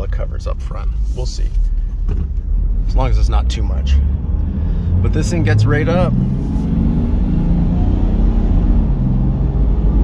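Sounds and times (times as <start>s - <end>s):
diesel engine accelerating: 2.6s - 10.0s.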